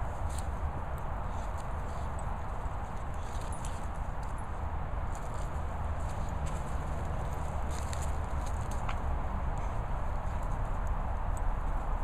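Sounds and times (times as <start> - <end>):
rustling in grass: 5.0 - 9.0.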